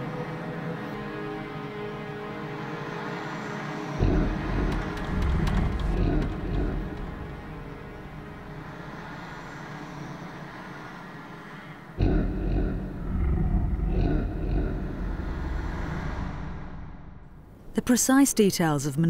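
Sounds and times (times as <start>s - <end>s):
held drone: 0.0s - 17.5s
deep rumble: 4.0s - 9.1s, 12.0s - 17.7s.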